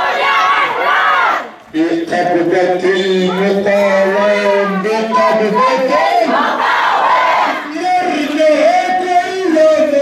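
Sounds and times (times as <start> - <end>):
many voices shouting: 0.0 - 1.5, 3.3 - 9.3
crowd chanting slogans: 0.0 - 1.6, 2.2 - 9.6.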